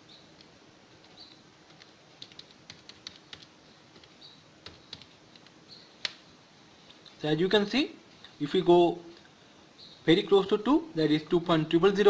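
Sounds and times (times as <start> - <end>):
calculator keys clicking: 1.7 - 6.2.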